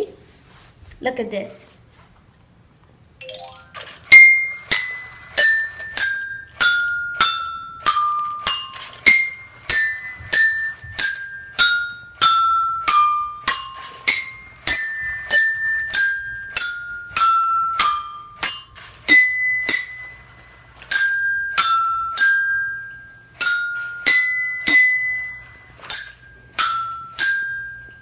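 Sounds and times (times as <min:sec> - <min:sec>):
toy xylophone tune: 0:03.2 - 0:28.0.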